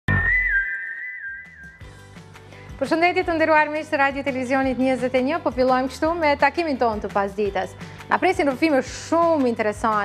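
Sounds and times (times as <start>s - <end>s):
whistled jingle tune: 0.1s - 2.0s.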